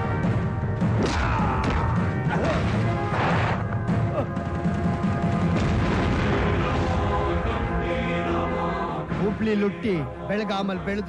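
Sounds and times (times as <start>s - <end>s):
loud background music: 0.0s - 11.0s.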